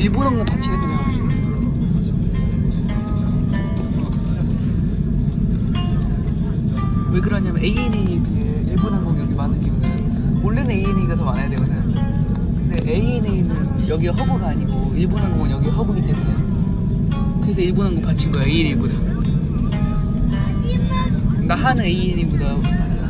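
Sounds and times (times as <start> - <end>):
airliner engine rumble: 0.0 - 23.0.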